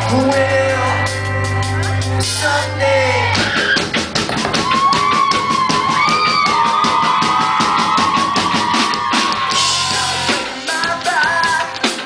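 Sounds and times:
guitar: 0.0 - 12.0
drum kit beat: 3.4 - 12.0.

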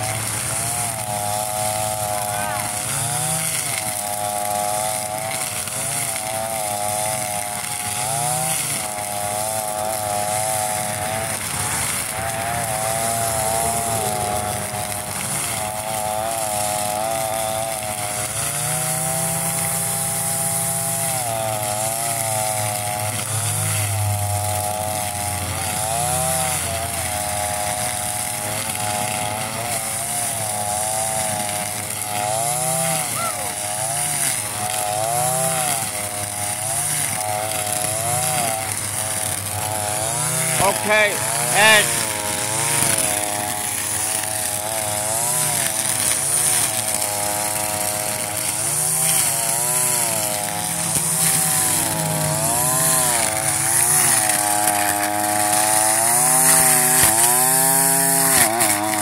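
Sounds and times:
string trimmer cutting grass: 0.0 - 59.0.

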